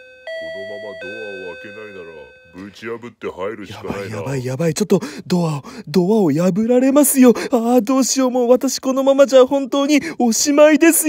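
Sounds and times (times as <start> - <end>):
two-tone doorbell chime: 0.0 - 2.7
person talking: 0.5 - 11.0.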